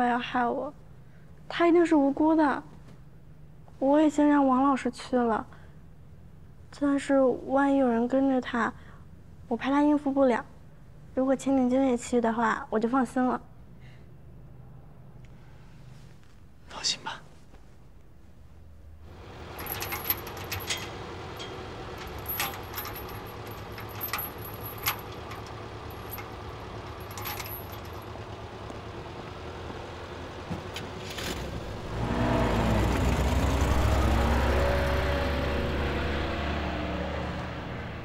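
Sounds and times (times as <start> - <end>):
vehicle engine rumbling past: 19.1 - 38.0.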